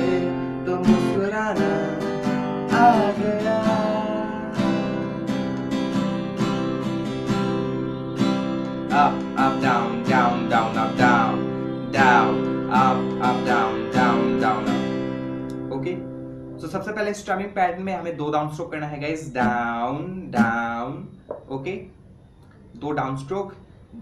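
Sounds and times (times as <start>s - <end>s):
acoustic guitar strumming chords: 0.0s - 17.6s, 19.2s - 20.9s.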